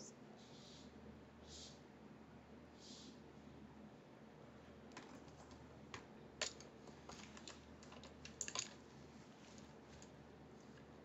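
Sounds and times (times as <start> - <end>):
makeup items clicking and tapping: 4.9 - 8.8.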